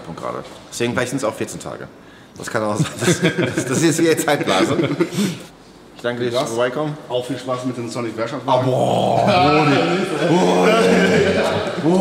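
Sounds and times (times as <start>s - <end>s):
man growling: 8.6s - 12.0s.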